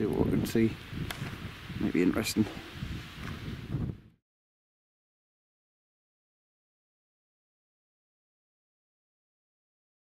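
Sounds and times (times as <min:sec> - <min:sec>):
wind buffeting microphone: 0:00.0 - 0:04.2.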